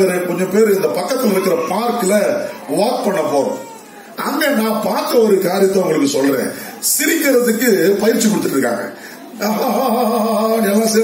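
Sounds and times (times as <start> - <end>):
man preaching: 0.0 - 11.0.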